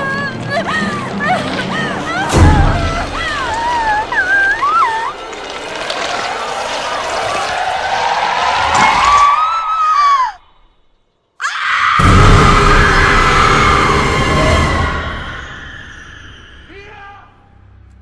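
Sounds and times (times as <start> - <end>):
woman screaming: 0.0 - 5.1
woman crying and wailing: 0.0 - 5.2
ominous film score: 0.0 - 18.0
deep rumble: 12.0 - 16.7.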